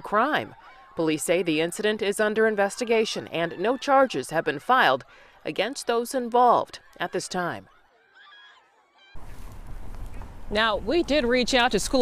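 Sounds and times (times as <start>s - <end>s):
crowd shouting: 0.0s - 9.2s
traffic rumble: 9.2s - 12.0s.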